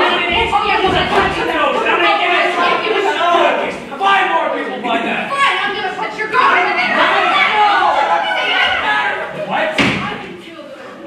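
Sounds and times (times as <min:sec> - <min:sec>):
people talking: 0:00.0 - 0:11.0
door slamming: 0:09.7 - 0:10.3.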